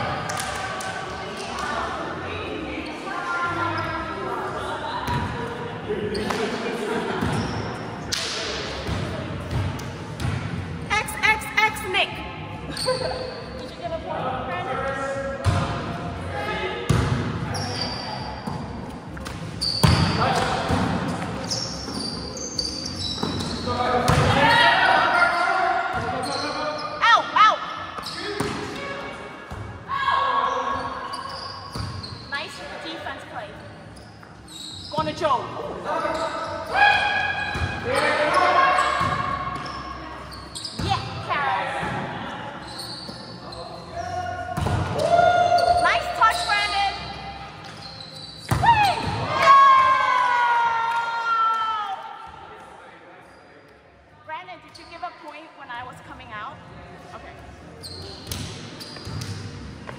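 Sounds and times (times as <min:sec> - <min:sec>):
players calling and chattering: 0:00.0 - 0:59.9.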